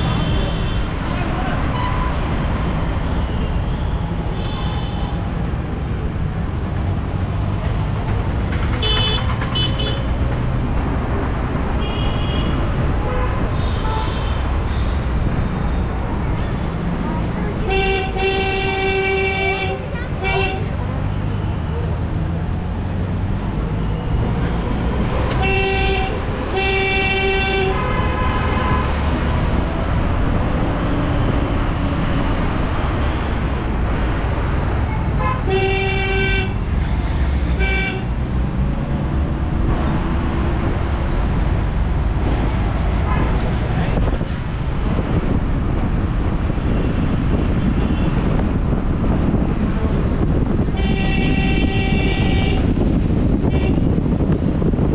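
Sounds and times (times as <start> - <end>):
engine and road rumble: 0.0 - 54.9
vehicle horns honking: 8.8 - 10.2, 11.8 - 15.1, 17.6 - 21.4, 25.4 - 29.2, 35.2 - 36.7, 37.5 - 38.3, 46.7 - 48.4, 50.7 - 52.8, 53.4 - 54.0.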